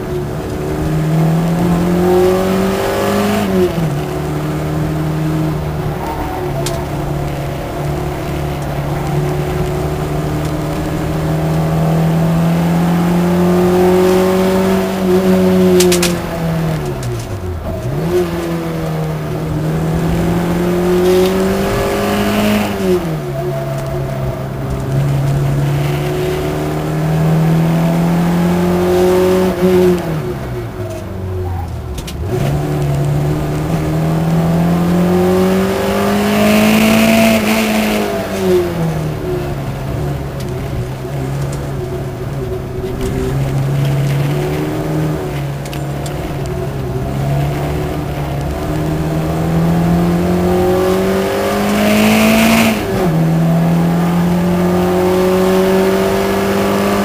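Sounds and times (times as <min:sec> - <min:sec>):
racing car engine revving: 0:00.0 - 0:57.0.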